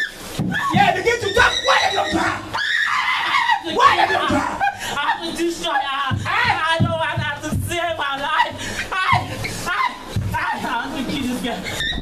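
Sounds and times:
woman crying out high-pitched: 0.0s - 5.1s.

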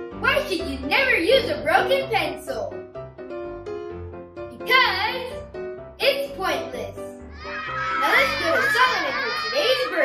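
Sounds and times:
light background music: 0.0s - 10.0s
boy speaking: 4.6s - 5.3s, 8.0s - 10.0s
crowd of children reacting: 7.3s - 10.0s.

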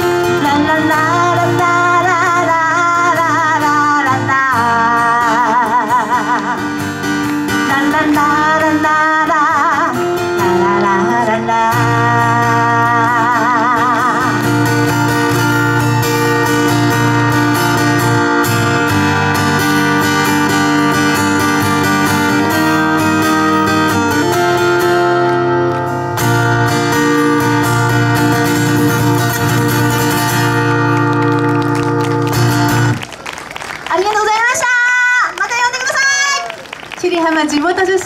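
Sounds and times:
acoustic guitar strumming: 0.0s - 33.0s.

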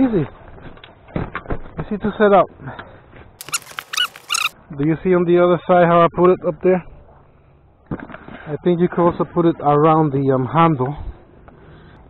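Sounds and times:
dog whining: 3.4s - 4.5s.

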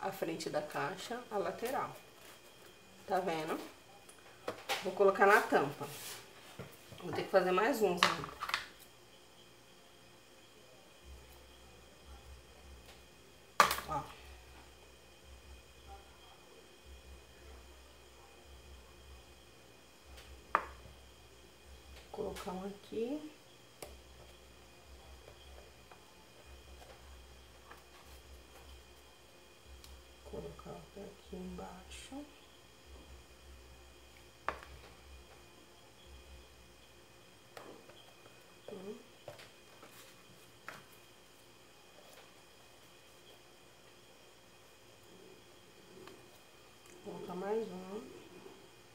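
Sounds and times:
faint steady hum: 0.0s - 48.9s.

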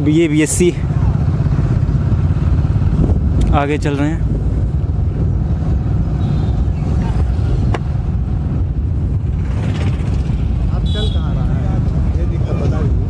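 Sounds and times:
vehicle running noise: 0.0s - 13.0s
wind rumble on microphone: 1.2s - 10.8s.

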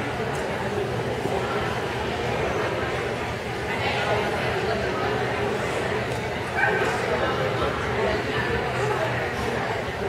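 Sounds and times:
people talking: 0.0s - 10.0s
dog barking: 6.6s - 7.0s.

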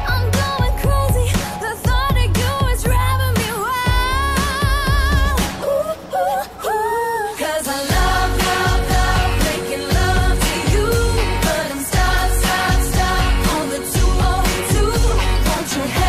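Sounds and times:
heavy bass beat: 0.0s - 5.5s, 7.9s - 16.0s
pop song with singing: 0.0s - 16.0s.

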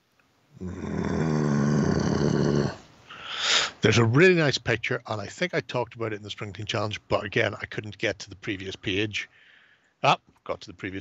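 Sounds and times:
man's raspy wordless vocal noise: 0.6s - 4.3s
short breathy hiss: 2.8s - 3.8s.

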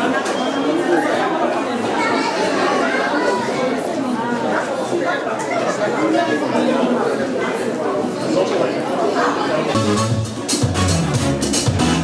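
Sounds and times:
hubbub of overlapping voices: 0.0s - 12.0s.

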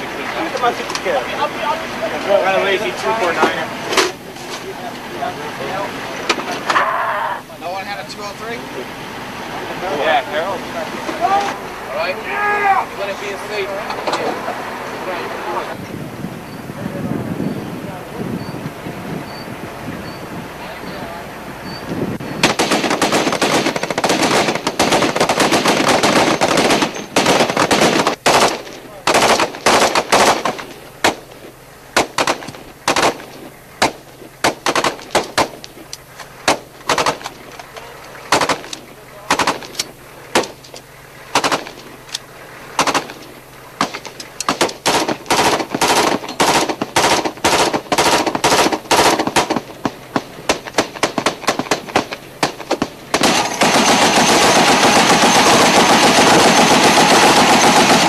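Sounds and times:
machine-gun and rifle fire: 22.4s - 35.6s, 36.4s - 37.4s, 38.3s - 40.6s, 41.3s - 41.9s, 42.7s - 58.0s.

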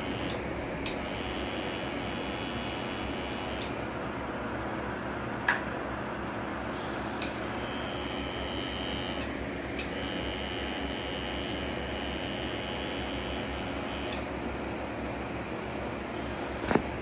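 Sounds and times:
tattoo machine whine: 0.0s - 3.8s, 6.7s - 14.5s.

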